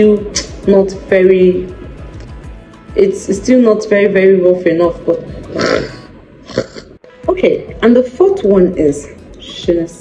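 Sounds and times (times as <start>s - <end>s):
woman's throaty rasp: 5.5s - 7.0s.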